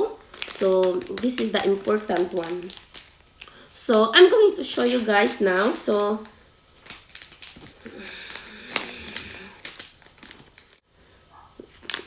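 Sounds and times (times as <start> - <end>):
plastic packet crinkling: 0.0 - 10.8, 11.6 - 12.0.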